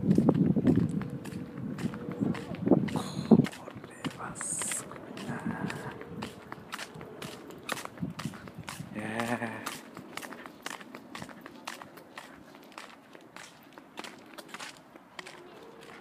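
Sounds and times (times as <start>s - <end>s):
footsteps on gritty path: 0.0s - 16.0s.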